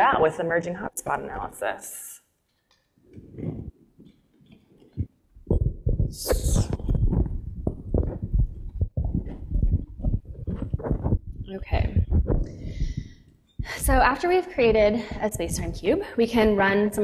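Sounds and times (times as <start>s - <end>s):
microphone handling noise: 3.0s - 16.0s.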